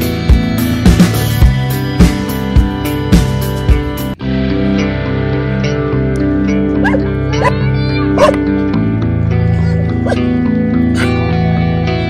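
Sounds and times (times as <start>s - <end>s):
background music: 0.0s - 12.0s
dog barking: 6.8s - 7.6s, 8.2s - 8.4s, 9.5s - 10.3s.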